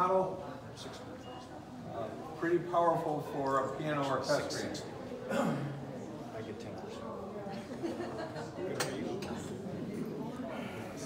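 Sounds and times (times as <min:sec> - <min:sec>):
faint voices: 0:00.1 - 0:11.0.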